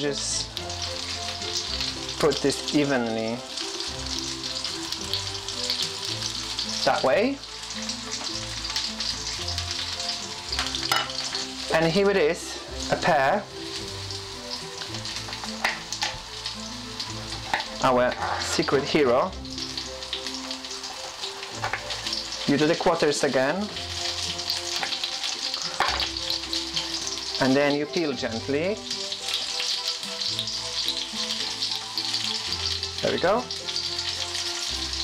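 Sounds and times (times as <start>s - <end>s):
background music with sustained notes: 0.0s - 35.0s
vegetables sizzling in a pan: 0.0s - 35.0s.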